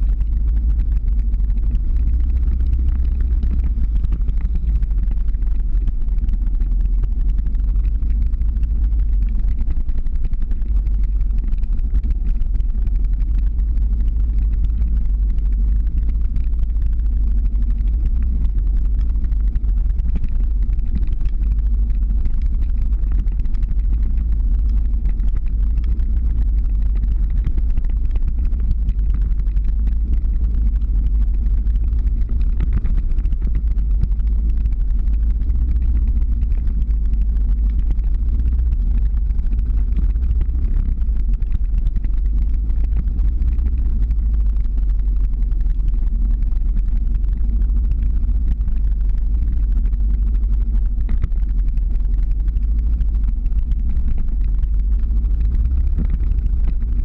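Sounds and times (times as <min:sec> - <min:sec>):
vehicle engine and road noise: 0:00.0 - 0:57.0.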